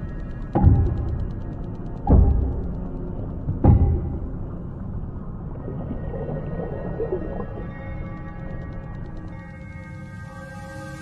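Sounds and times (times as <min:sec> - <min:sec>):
muffled underwater rumble: 0:00.0 - 0:09.6.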